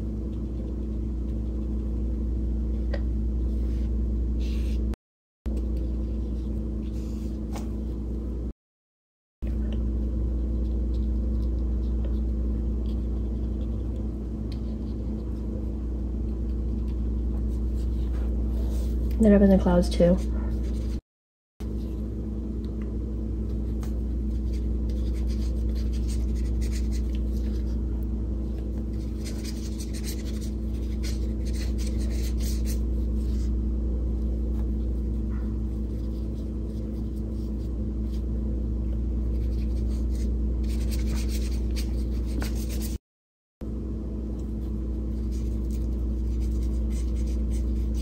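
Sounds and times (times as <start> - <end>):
steady low hum: 0.0 - 8.6, 9.4 - 21.0, 21.6 - 43.0, 43.6 - 48.0
paintbrush scratching on paper: 24.3 - 27.8, 28.9 - 33.5, 39.3 - 43.0, 45.1 - 48.0.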